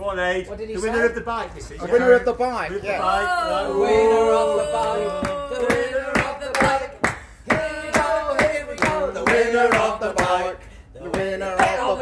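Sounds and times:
men singing wordless tune: 0:03.8 - 0:12.0
rhythmic hand claps: 0:04.8 - 0:12.0.

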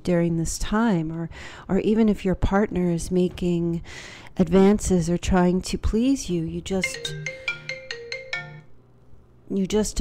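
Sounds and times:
phone alert chiming notes: 0:06.8 - 0:08.8.

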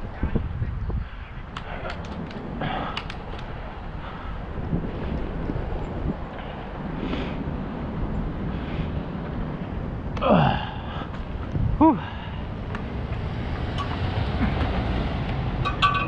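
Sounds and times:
wind rumbling on microphone: 0:00.0 - 0:16.0
sharp clicks and rattles: 0:01.6 - 0:03.6.

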